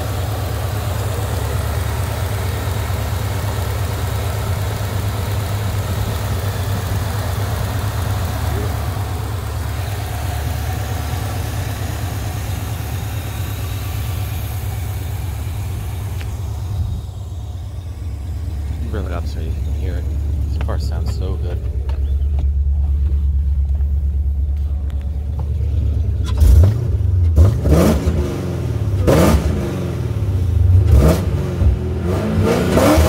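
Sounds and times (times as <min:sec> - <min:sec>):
car engine idling: 0:00.0 - 0:32.1.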